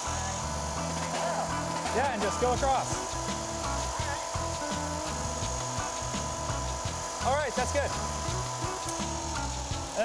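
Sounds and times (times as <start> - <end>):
background music: 0.0 - 10.0
milling machine cutter whine: 0.0 - 10.0.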